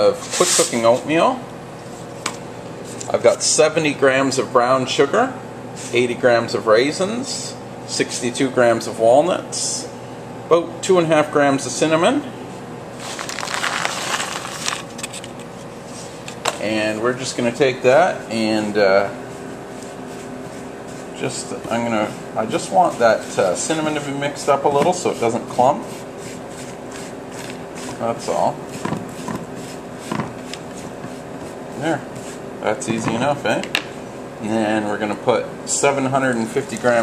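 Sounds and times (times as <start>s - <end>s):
steady low hum: 0.0s - 37.0s
utensil scraping bowl of oats: 19.3s - 33.0s.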